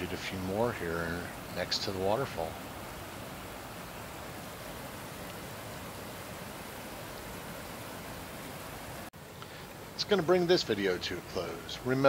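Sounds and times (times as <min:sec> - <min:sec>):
waterfall pouring over rocks: 0:00.0 - 0:12.0.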